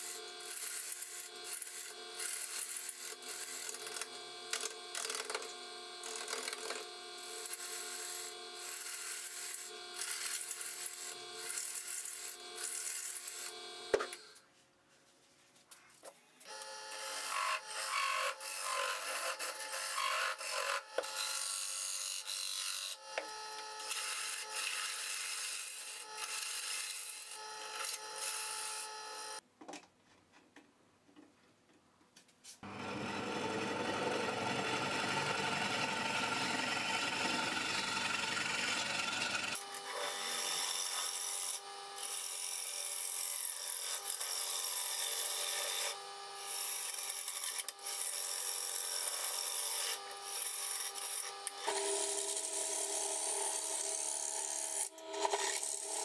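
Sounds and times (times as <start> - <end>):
wood lathe tones: 0.0 - 14.4, 16.4 - 29.4, 32.6 - 56.0
gouge scraping wood on lathe: 17.0 - 28.9, 33.9 - 56.0.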